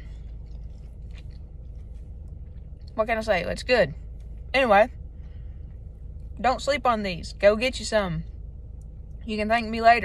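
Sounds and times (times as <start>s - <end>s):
person chewing crunchy food: 0.0s - 3.0s
car cabin rumble: 0.0s - 10.0s.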